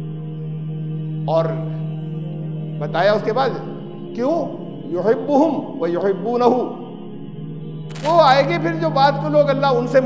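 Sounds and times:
droning background music: 0:00.0 - 0:10.0.

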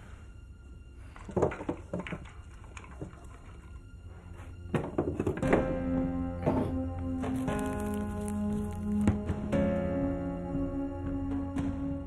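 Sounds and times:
music with long held notes: 0:00.0 - 0:12.0.

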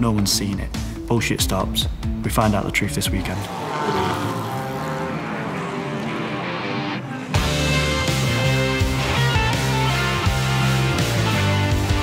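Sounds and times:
race car engine at speed: 0:03.0 - 0:08.6.

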